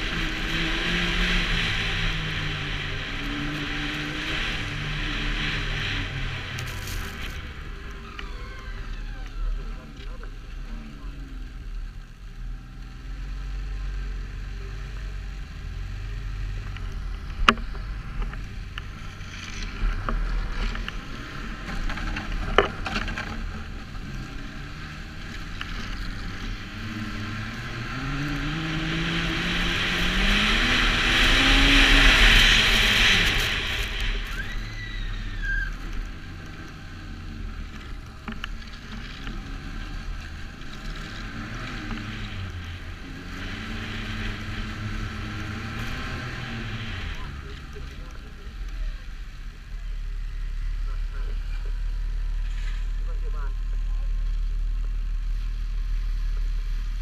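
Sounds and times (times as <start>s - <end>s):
snowmobile engine running: 0.0s - 12.6s, 13.3s - 34.7s, 35.6s - 49.4s
snowmobile track noise: 0.0s - 57.0s
rushing wind: 16.4s - 47.8s.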